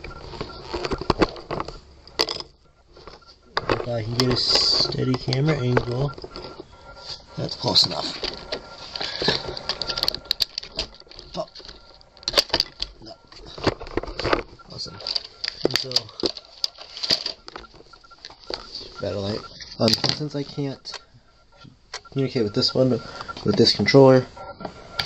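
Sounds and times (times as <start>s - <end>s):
plastic parts clicking and rattling: 0.6s - 6.6s, 8.0s - 17.9s.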